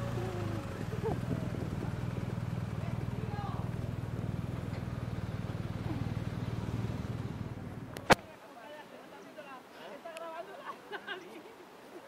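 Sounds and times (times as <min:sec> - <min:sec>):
motorcycle engine running: 0:00.0 - 0:08.2.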